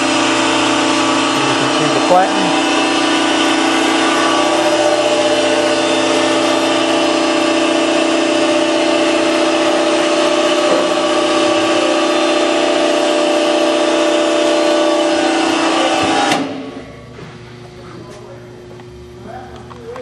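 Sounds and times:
hydraulic motor humming: 0.0s - 20.0s.

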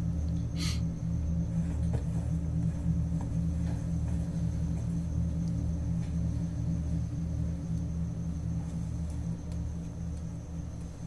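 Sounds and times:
low rumbling horror drone: 0.0s - 11.0s.

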